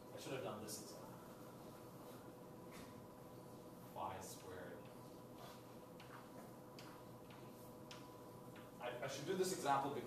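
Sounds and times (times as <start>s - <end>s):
low room hum: 0.0s - 10.0s
chalk ticking on blackboard: 4.8s - 8.8s.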